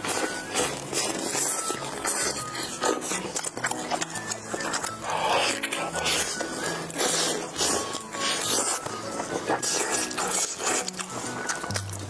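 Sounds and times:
slurping noodles: 0.0 - 12.0
wet biting and chewing: 0.0 - 12.0.

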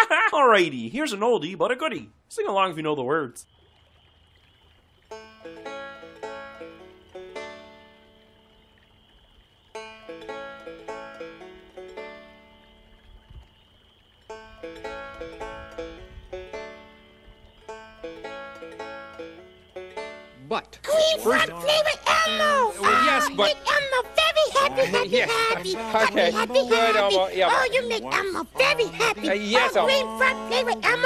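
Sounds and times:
banjo picking: 5.1 - 8.8, 9.7 - 13.1, 14.3 - 31.0.

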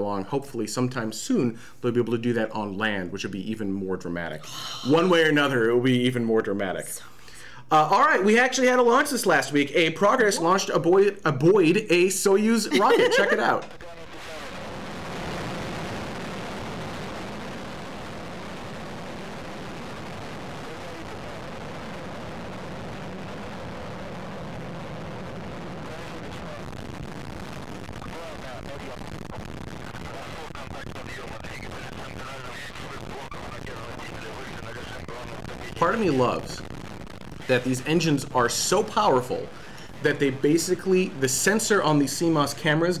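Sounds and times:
rocket engines rumbling: 12.2 - 43.0.

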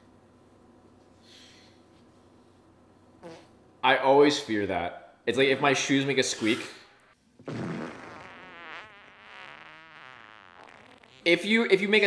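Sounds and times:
comic buzzing fart: 3.2 - 3.5, 6.9 - 11.3.

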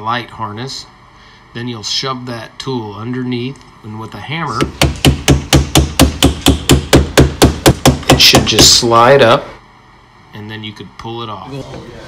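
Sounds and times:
hammer tapping metal wedge: 4.6 - 8.8.

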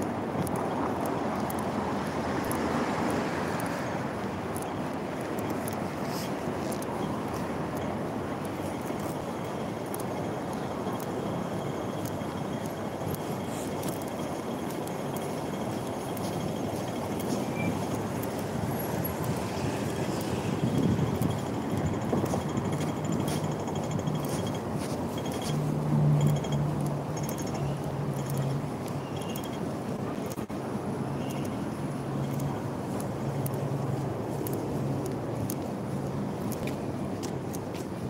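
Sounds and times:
city traffic rumble: 0.0 - 38.0.

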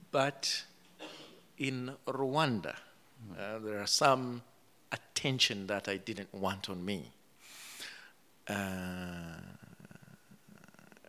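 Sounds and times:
man saying uh: 8.5 - 10.2.

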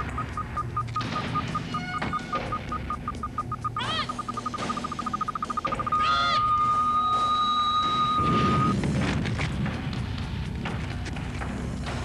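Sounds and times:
electronic beep pulsing: 0.0 - 8.8
swooping electronic chirps: 0.0 - 8.8.

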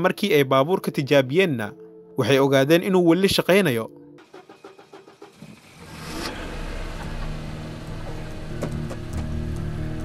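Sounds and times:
car engine starting and revving: 4.2 - 10.0.

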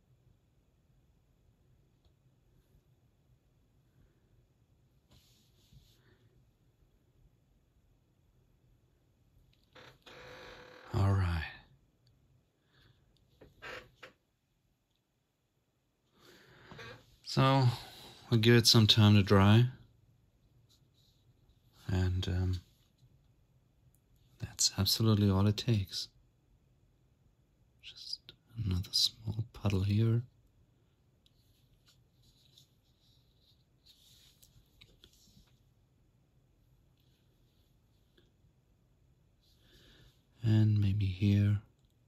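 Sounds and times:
hands scratching and rustling: 31.2 - 35.8.

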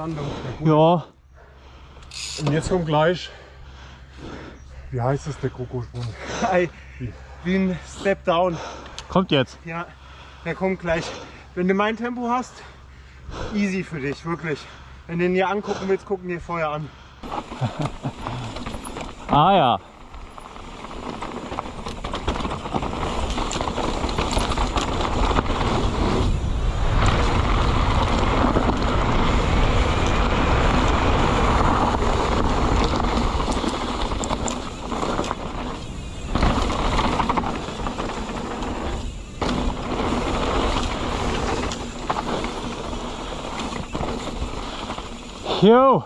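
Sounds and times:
tyres rumbling over dirt: 17.2 - 46.0.

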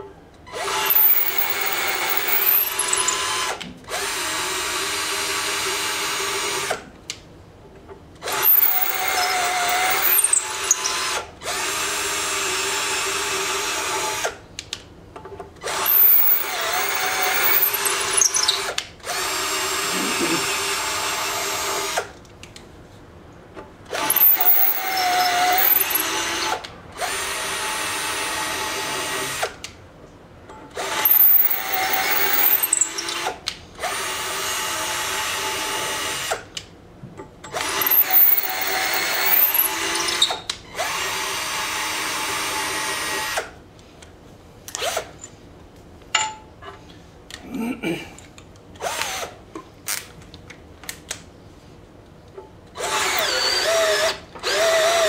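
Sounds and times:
power drill boring steel: 0.5 - 6.7, 8.2 - 14.3, 15.7 - 22.0, 23.9 - 29.4, 30.8 - 36.3, 37.5 - 43.4, 52.8 - 55.0.

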